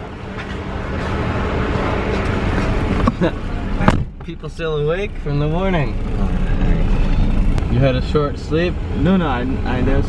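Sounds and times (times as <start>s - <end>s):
car engine idling: 0.0s - 10.0s
street traffic noise: 0.0s - 10.0s.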